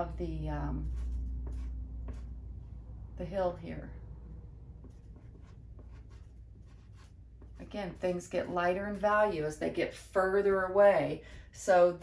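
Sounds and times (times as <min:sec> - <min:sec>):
pastel stick scratching paper: 0:00.7 - 0:02.3, 0:04.8 - 0:09.4.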